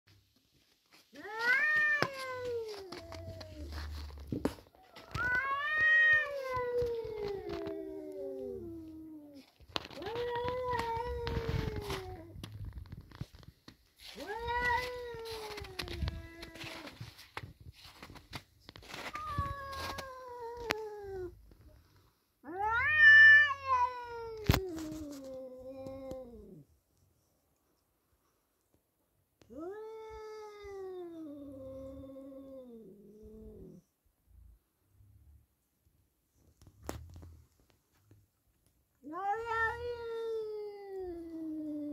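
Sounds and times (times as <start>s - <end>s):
cats yowling: 1.2s - 4.2s, 4.9s - 12.4s, 14.1s - 17.0s, 19.0s - 21.4s, 22.5s - 26.6s, 39.0s - 41.9s.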